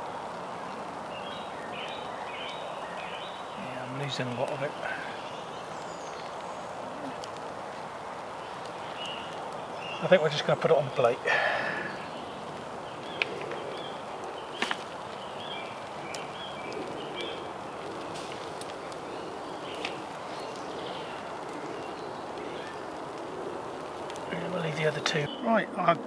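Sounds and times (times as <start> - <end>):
faint birdsong: 0.0 - 26.0
wood fire burning: 0.0 - 26.0.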